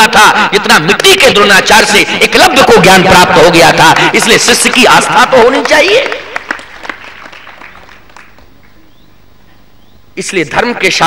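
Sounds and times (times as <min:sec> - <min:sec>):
audience clapping: 0:03.7 - 0:08.8.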